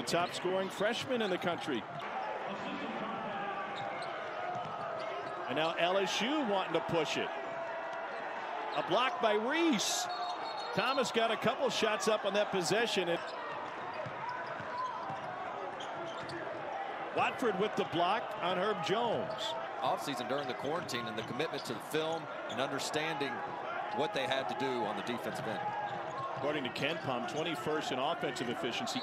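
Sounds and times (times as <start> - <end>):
sneaker squeaks: 3.5 - 5.5, 10.0 - 11.0, 13.2 - 16.5.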